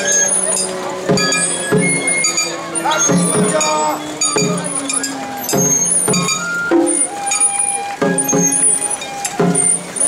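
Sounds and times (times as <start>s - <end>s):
high ringing tones: 0.0s - 9.2s.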